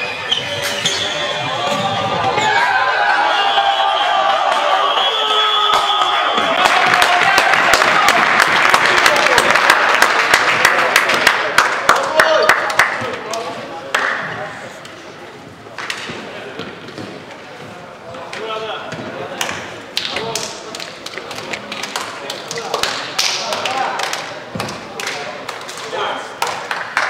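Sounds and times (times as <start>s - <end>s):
voices of players and spectators: 0.0s - 27.0s.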